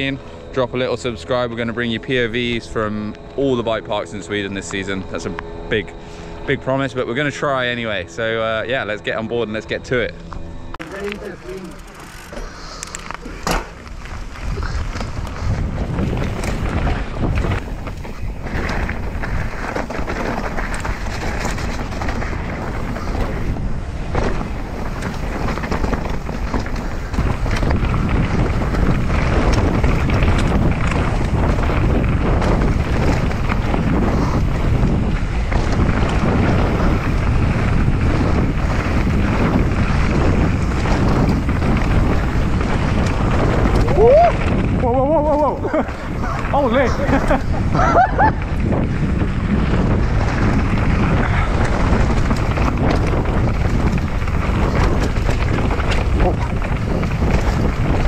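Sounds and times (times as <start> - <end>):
wind buffeting microphone: 0.0 - 58.0
bike knocks and rattles: 10.3 - 58.0
tyres rolling on dirt: 10.8 - 58.0.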